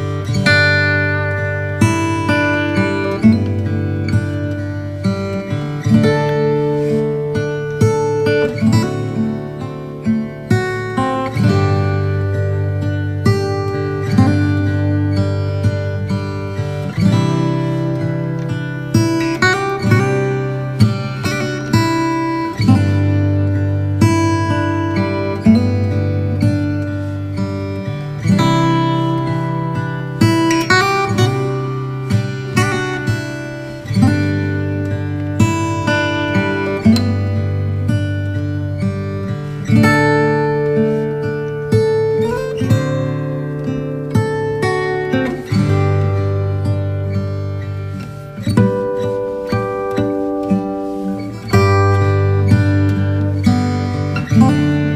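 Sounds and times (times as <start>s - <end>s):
acoustic guitar playing: 0.0s - 54.9s.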